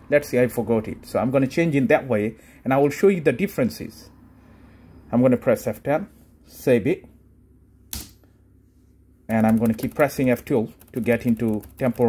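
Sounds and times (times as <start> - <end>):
laptop key press: 10.9 - 12.0.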